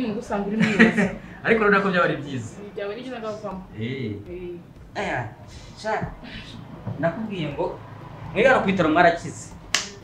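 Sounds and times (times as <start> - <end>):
sharp snap: 9.6 - 10.0.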